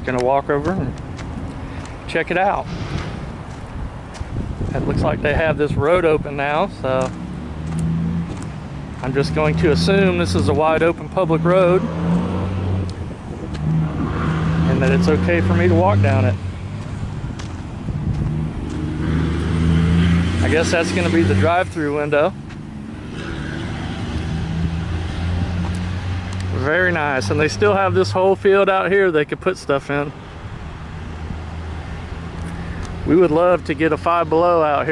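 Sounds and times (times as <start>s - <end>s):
vehicle engine humming: 0.0s - 34.9s
wind on microphone: 2.6s - 6.7s, 11.8s - 15.4s, 16.0s - 20.5s.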